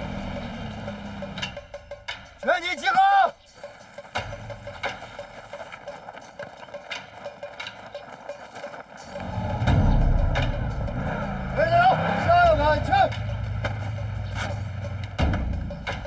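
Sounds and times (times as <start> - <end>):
utility vehicle engine on gravel: 0.0 - 1.7, 3.5 - 16.0
voices calling out: 0.0 - 16.0.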